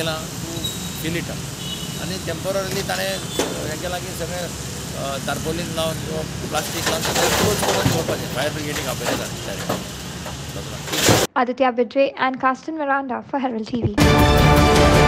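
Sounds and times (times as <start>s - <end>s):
vehicle engine idling: 0.0s - 10.8s
men talking: 0.0s - 11.0s.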